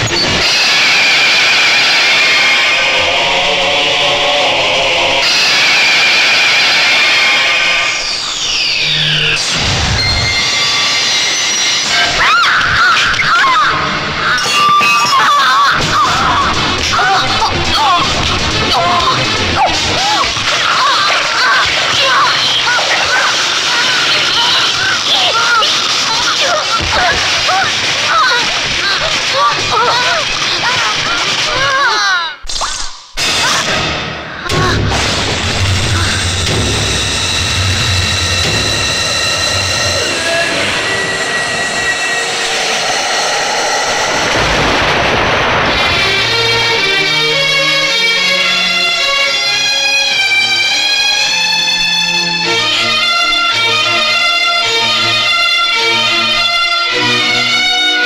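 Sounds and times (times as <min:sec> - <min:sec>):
dissonant tense film music: 0:00.0 - 0:32.2, 0:33.0 - 0:58.0
low rumble: 0:34.6 - 0:47.3
falling sweeps: 0:34.9 - 0:47.3
whooshing swishes: 0:39.7 - 0:46.2.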